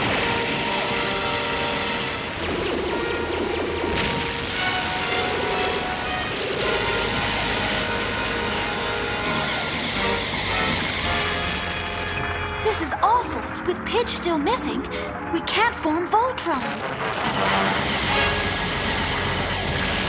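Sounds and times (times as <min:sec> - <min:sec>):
explosions and crashes: 0:00.0 - 0:11.3, 0:16.9 - 0:20.0
dramatic cartoon music: 0:00.0 - 0:20.0.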